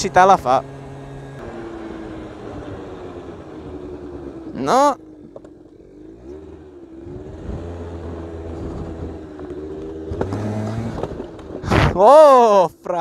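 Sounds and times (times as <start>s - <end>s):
scooter engine running: 0.0s - 12.0s
wind noise: 7.1s - 12.1s.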